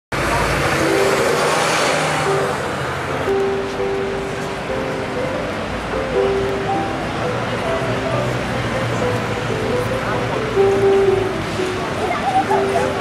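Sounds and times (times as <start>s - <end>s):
bus passing: 0.1s - 13.0s
street traffic: 0.1s - 13.0s
music with long held notes: 0.2s - 13.0s.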